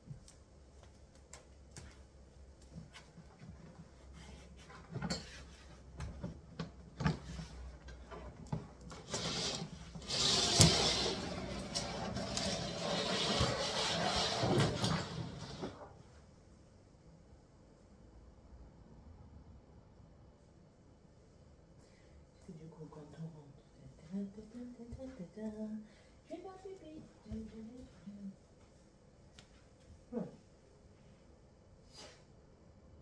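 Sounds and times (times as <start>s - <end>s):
cabinet scraping across tiled floor: 8.9s - 15.9s.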